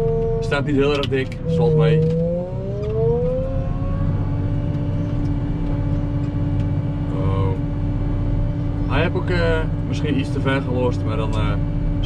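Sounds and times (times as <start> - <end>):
wheel loader engine revving: 0.0 - 7.6.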